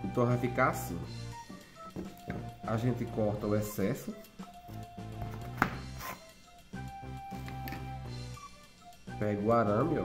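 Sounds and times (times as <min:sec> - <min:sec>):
plucked background music: 0:00.0 - 0:10.0.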